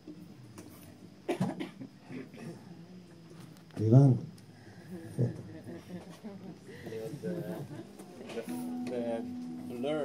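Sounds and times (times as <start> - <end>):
faint murmur of people talking: 0.0 - 10.0.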